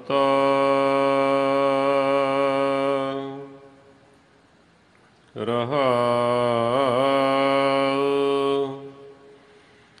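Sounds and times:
man chanting: 0:00.0 - 0:03.8, 0:05.3 - 0:09.4.

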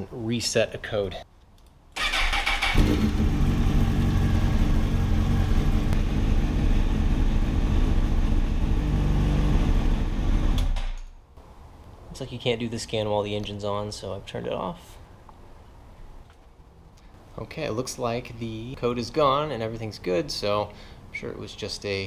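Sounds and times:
motorcycle engine idling: 0:02.6 - 0:10.4.

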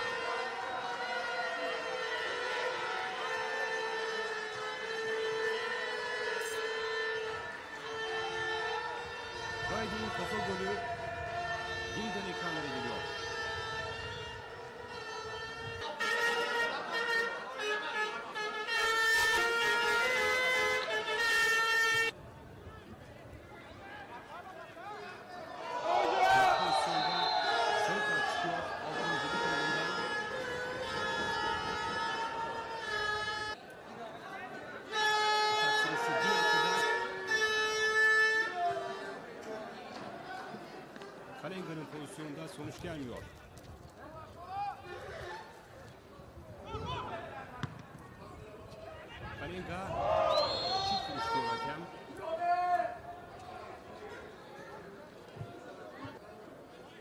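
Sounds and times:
horns blowing: 0:00.0 - 0:22.2, 0:26.0 - 0:33.6, 0:34.8 - 0:39.2.

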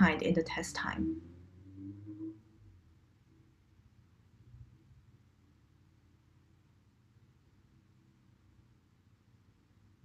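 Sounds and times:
faint low hum: 0:00.0 - 0:10.0.

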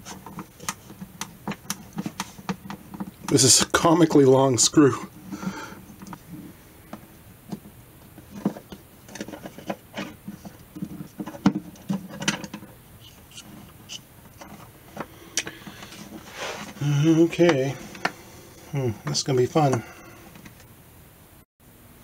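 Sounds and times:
small clicks taps and scrapes: 0:00.0 - 0:03.4, 0:05.4 - 0:16.8, 0:17.4 - 0:18.3.

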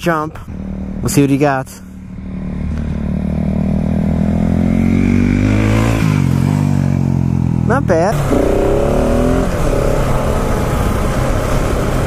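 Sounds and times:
motorcycle engine pulling away: 0:02.1 - 0:07.6, 0:08.2 - 0:11.7.

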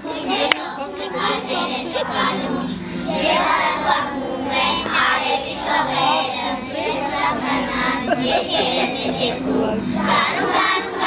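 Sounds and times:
children singing: 0:00.0 - 0:11.0
musical accompaniment: 0:00.0 - 0:11.0.

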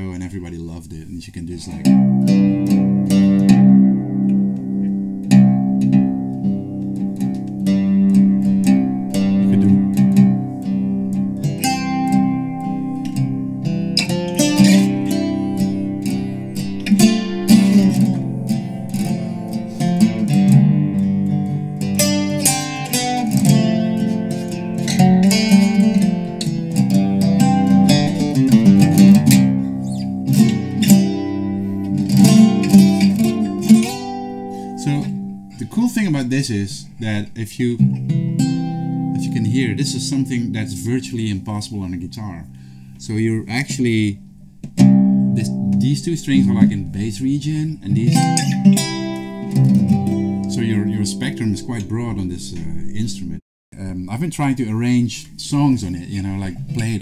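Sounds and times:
mandocello picked solo: 0:01.7 - 0:53.0.

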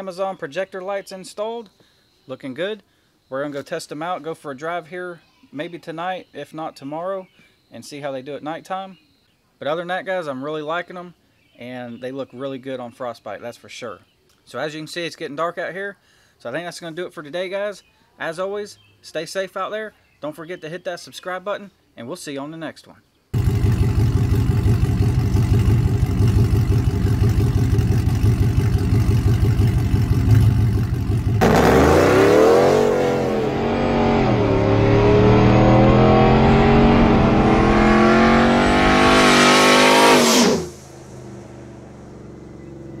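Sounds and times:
truck engine rumbling and accelerating: 0:23.4 - 0:43.0.

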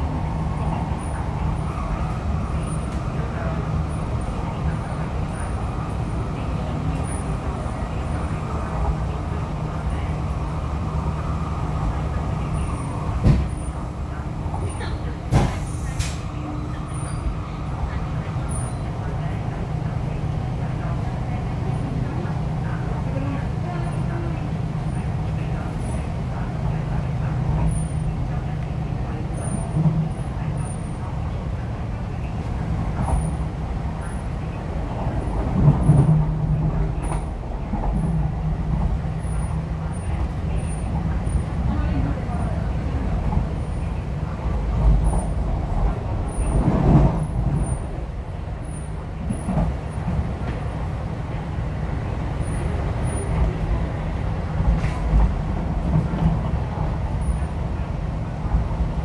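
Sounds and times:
train wheels rumbling on track: 0:00.0 - 0:59.0.

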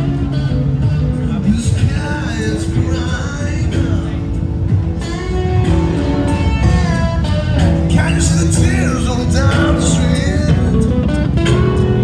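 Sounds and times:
amplified guitar: 0:00.0 - 0:12.0
person singing: 0:06.6 - 0:11.0.

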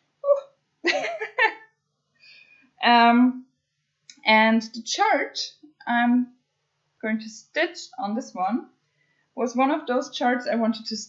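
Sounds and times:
woman laughing: 0:00.9 - 0:01.5.

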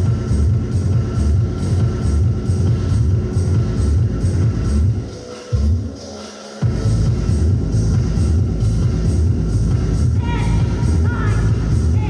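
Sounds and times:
loud music with pulsing bass beat: 0:00.0 - 0:12.0.

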